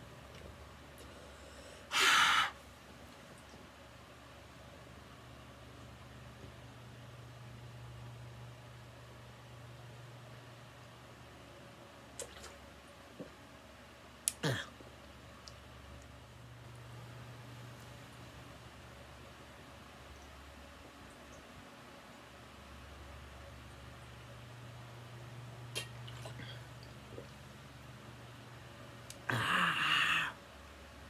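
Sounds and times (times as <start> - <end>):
steady low hum: 0.0 - 31.0.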